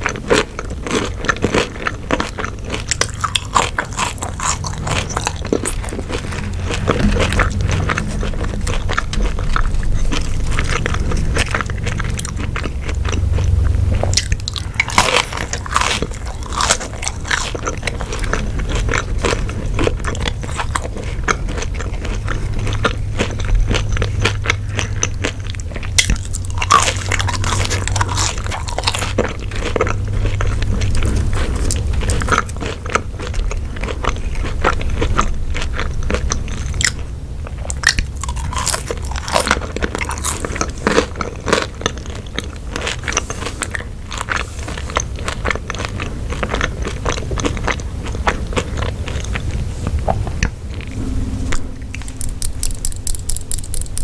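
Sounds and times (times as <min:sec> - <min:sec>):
chewing crunchy fries: 0:00.0 - 0:51.0
mouth clicks and crackles: 0:51.8 - 0:54.0.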